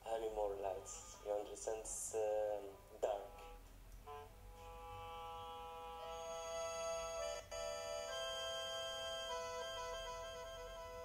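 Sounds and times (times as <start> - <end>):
quiet sustained chord music: 0.0 - 11.0.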